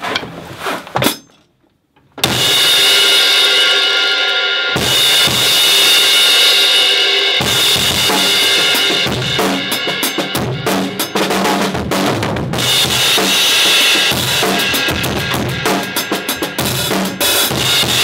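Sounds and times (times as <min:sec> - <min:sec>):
kick snare and cymbal strokes: 0:02.2 - 0:18.0.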